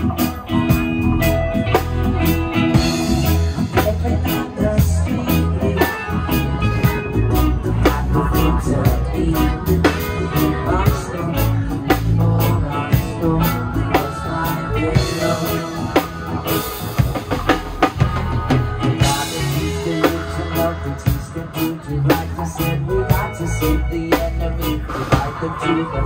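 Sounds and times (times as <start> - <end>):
live rock band: 0.0 - 26.0.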